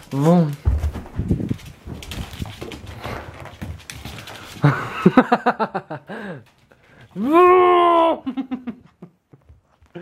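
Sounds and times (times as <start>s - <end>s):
rustling and scuffling: 0.0s - 5.3s
man laughing: 4.6s - 6.4s, 8.0s - 9.2s.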